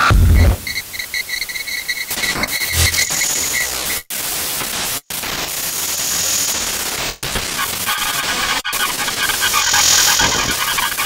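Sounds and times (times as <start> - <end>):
loud white noise hiss: 2.5 - 11.0.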